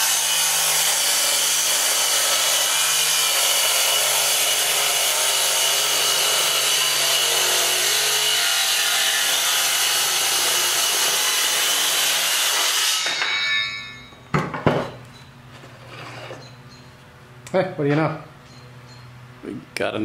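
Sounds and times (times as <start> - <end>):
circular saw cutting wood: 0.0 - 14.1.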